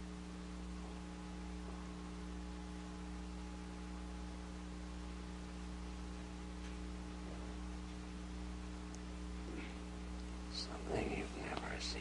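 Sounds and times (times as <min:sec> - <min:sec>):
low electrical hum: 0:00.0 - 0:12.0
person whispering: 0:10.5 - 0:12.0.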